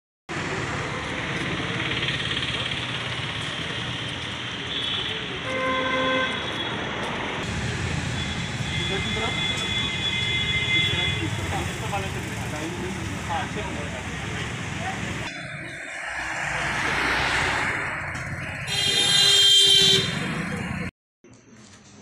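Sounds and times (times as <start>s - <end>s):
road traffic: 0.3s - 22.0s
vehicle horn: 4.7s - 6.7s, 8.2s - 11.3s, 18.6s - 20.3s
indistinct voices: 10.9s - 18.7s.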